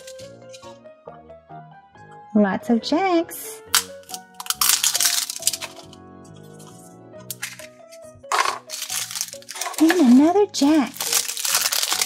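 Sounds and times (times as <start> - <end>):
plastic capsule cracking open: 0.0 - 0.7, 3.7 - 10.2, 10.9 - 12.0
background music: 0.0 - 12.0.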